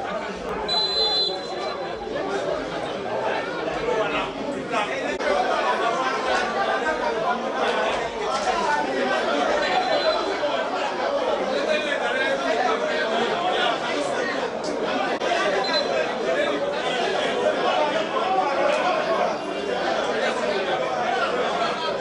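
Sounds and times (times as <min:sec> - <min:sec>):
indistinct chatter of voices: 0:00.0 - 0:22.0.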